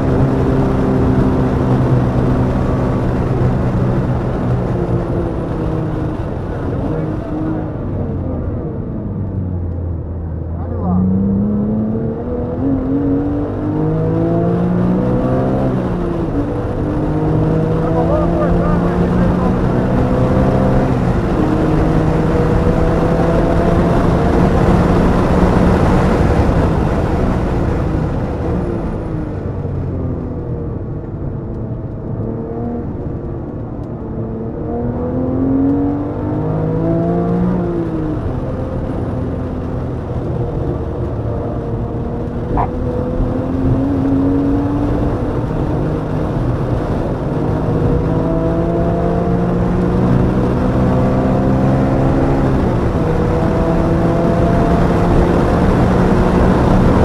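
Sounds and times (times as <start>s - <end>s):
car engine revving through gearshifts: 0.0s - 27.3s, 31.6s - 57.0s
wind and road noise: 0.0s - 57.0s.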